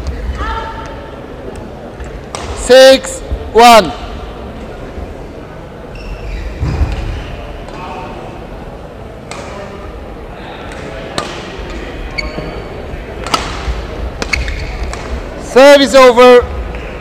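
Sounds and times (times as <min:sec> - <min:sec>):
racket striking shuttlecock: 0:13.2 - 0:15.2.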